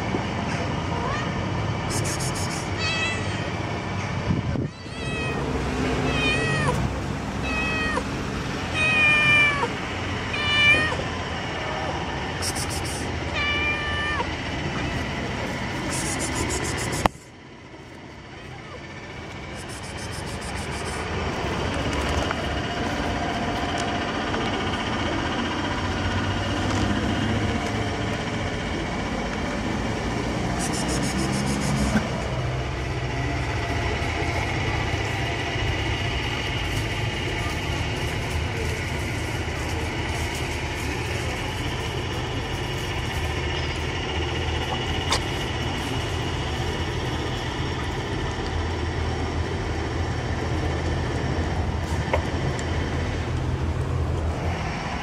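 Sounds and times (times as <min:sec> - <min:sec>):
steady background noise: 0:00.0 - 0:55.0
cat meowing: 0:02.2 - 0:03.6, 0:04.6 - 0:06.8, 0:07.4 - 0:08.1, 0:08.7 - 0:11.1, 0:12.6 - 0:15.1.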